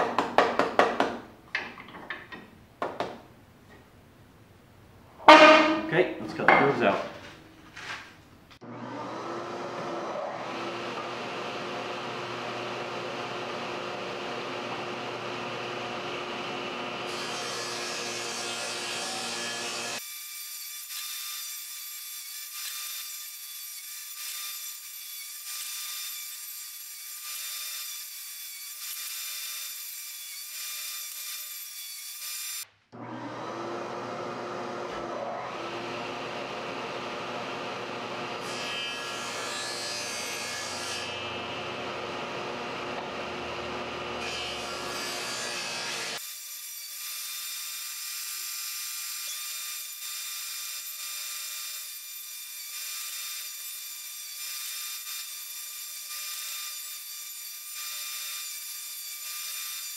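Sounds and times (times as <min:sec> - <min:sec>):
table saw cutting wood: 0:05.2 - 0:05.9, 0:08.6 - 0:59.9.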